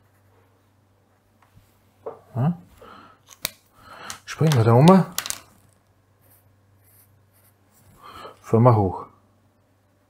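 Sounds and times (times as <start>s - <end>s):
pen clicks: 3.3s - 5.6s
pen strokes on paper: 6.2s - 8.0s.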